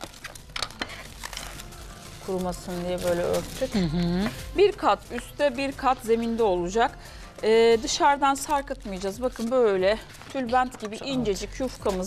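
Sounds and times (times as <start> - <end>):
plastic sheet crinkling: 0.0 - 5.4, 7.8 - 12.0
faint background music: 0.0 - 12.0.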